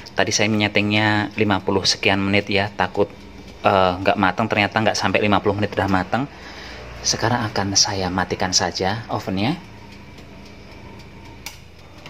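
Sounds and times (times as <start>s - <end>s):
electric oven humming: 0.0s - 12.0s
oven switch click: 11.2s - 12.0s.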